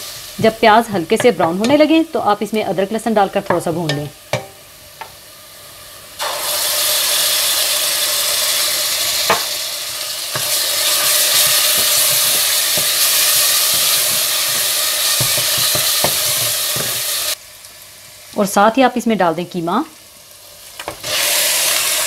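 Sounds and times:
loud sizzling in hot oil: 0.0s - 22.0s
spatula knocking against pan: 1.2s - 1.9s, 3.5s - 5.1s, 10.4s - 17.0s
wooden spatula stirring: 10.3s - 17.2s.

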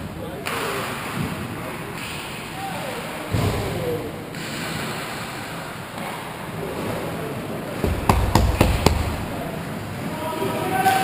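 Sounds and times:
hockey stick tapping: 7.8s - 9.4s
low thumping: 7.8s - 9.6s.

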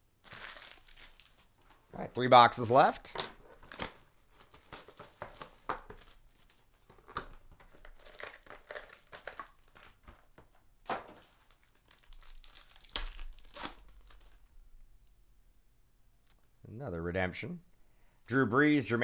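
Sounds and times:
foil wrapper tearing and crinkling: 0.2s - 1.5s, 7.7s - 10.1s, 11.0s - 14.4s.

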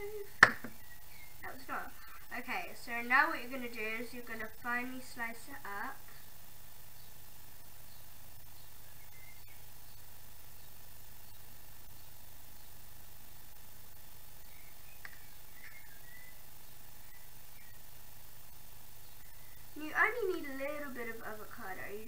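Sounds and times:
low hum and hiss: 0.0s - 22.0s
faint high chirps: 7.9s - 12.8s, 14.4s - 17.9s.

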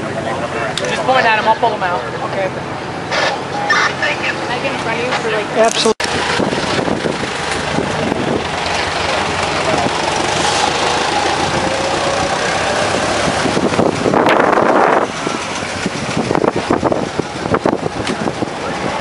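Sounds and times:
vintage car engines running: 0.0s - 19.0s
car passing close: 0.2s - 19.0s.

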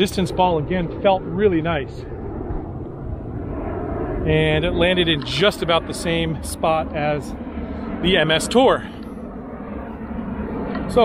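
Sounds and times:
low wind rumble on microphone: 0.0s - 11.0s.

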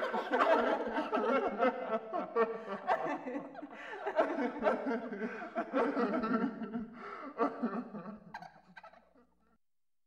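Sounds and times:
ghost cackling laugh: 0.0s - 9.5s.

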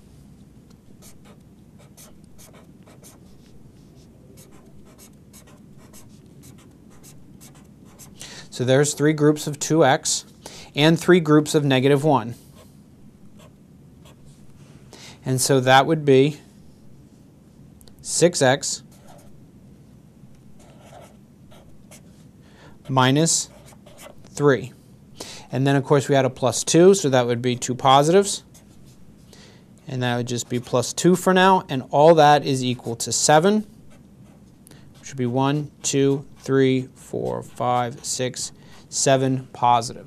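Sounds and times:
low room hum: 0.0s - 40.0s
marker scratching on board: 1.0s - 8.2s, 18.9s - 19.3s, 20.6s - 22.1s, 23.3s - 24.3s, 28.4s - 28.8s, 30.3s - 30.9s, 33.9s - 38.5s.

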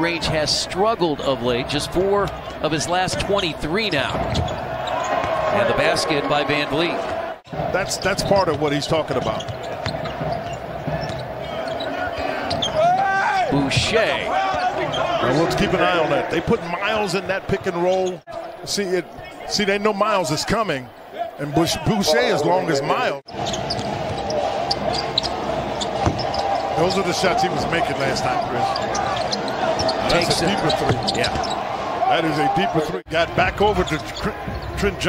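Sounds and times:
arena crowd noise: 0.0s - 35.0s
sneaker squeaks: 4.2s - 5.4s, 7.9s - 13.0s, 17.9s - 18.6s, 23.3s - 27.1s, 28.1s - 31.7s, 33.8s - 34.9s
ball bouncing: 23.7s - 26.4s.

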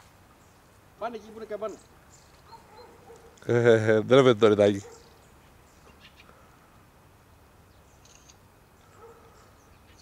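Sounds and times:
small birds chirping: 0.0s - 10.0s.

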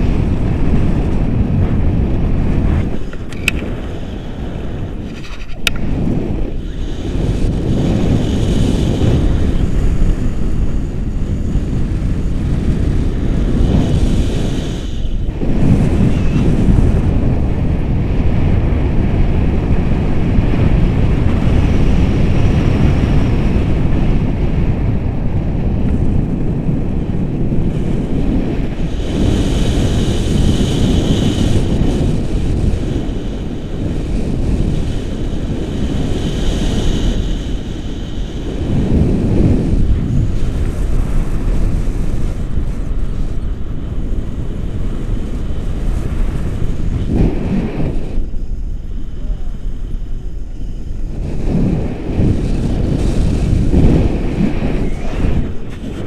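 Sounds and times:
wind noise on microphone: 0.0s - 56.0s.

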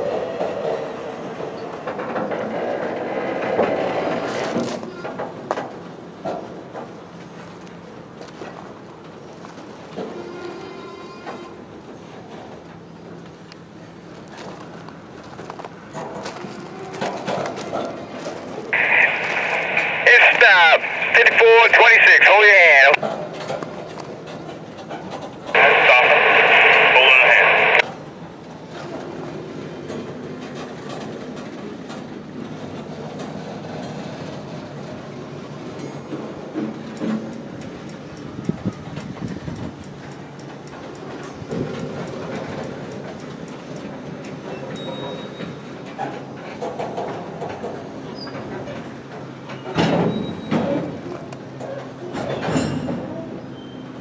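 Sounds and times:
two-way radio transmissions: 18.8s - 23.0s, 25.6s - 27.8s.

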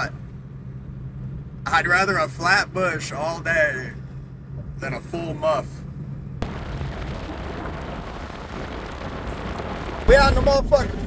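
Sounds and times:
low engine hum: 0.0s - 11.0s
tyres crackling on gravel: 6.4s - 11.0s.

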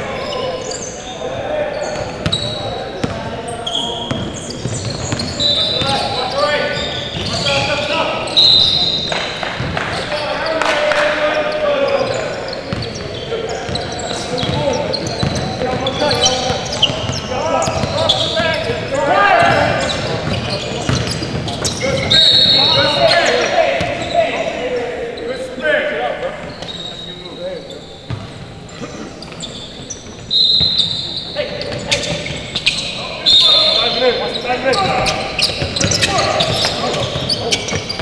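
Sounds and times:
players calling out: 0.0s - 38.0s
shoes squeaking: 0.0s - 38.0s
referee whistle blasts: 8.3s - 9.2s, 21.9s - 23.4s, 30.3s - 31.4s, 32.8s - 34.1s.

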